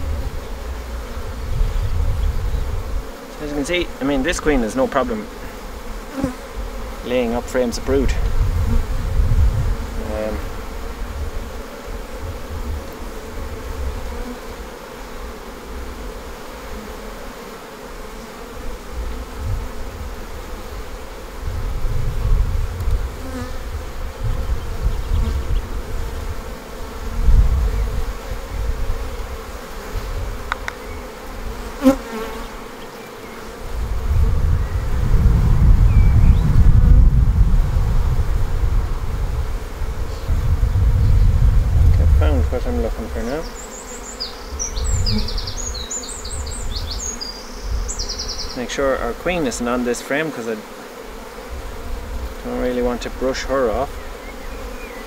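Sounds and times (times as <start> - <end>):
bees buzzing: 0.0 - 55.0.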